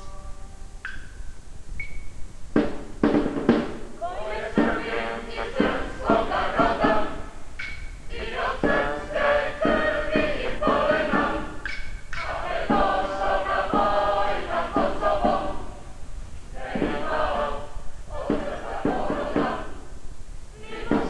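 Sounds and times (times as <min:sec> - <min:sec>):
group of voices chanting: 0:04.0 - 0:07.2, 0:08.1 - 0:11.6, 0:12.2 - 0:15.8, 0:16.6 - 0:19.8.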